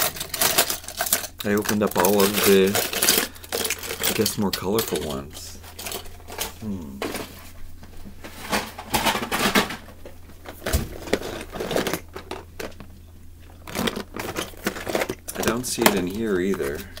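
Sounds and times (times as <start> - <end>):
toy cars rattling in plastic bin: 0.0 - 6.6, 8.5 - 9.8, 10.5 - 12.8, 13.6 - 17.0.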